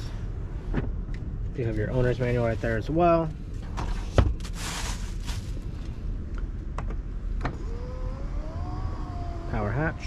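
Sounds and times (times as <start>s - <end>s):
electric motor whining: 7.4s - 10.0s.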